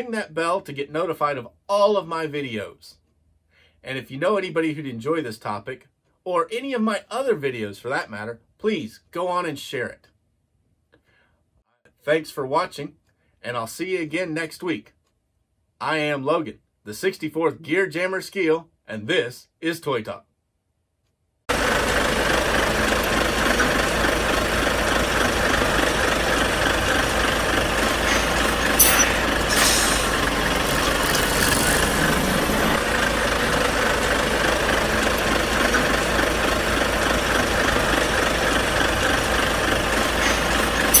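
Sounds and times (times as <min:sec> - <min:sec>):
heavy vehicle engine idling: 0:21.5 - 0:41.0
short hisses: 0:28.0 - 0:32.6.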